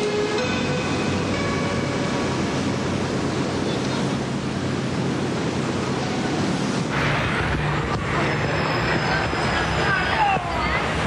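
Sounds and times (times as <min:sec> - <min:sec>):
music: 0:00.0 - 0:03.8
steady rushing noise: 0:00.0 - 0:11.0.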